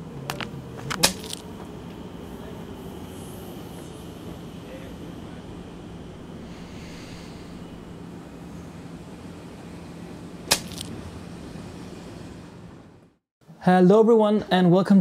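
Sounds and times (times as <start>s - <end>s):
low hum: 0.0s - 13.2s.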